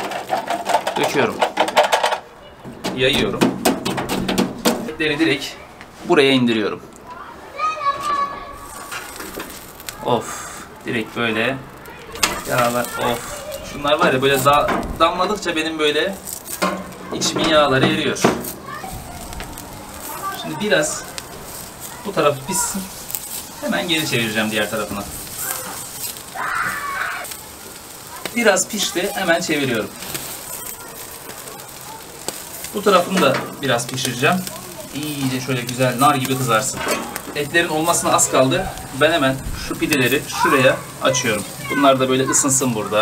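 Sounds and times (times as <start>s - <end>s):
meat sizzling over charcoal: 0.0s - 43.0s.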